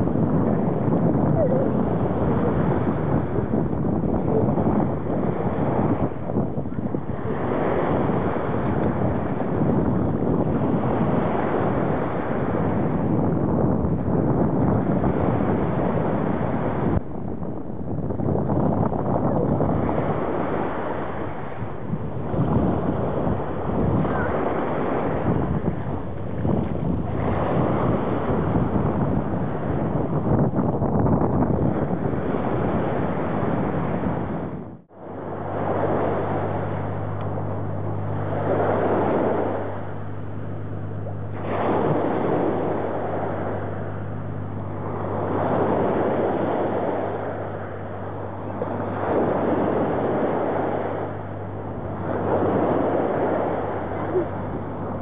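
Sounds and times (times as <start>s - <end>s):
steady low hum: 0.0s - 55.0s
waves washing onto beach: 0.0s - 55.0s
wind buffeting microphone: 0.0s - 55.0s.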